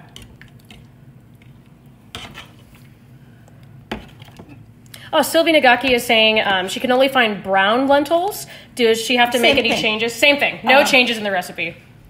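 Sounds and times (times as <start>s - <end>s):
metal spoon stirring in saucepan: 2.1s - 2.9s.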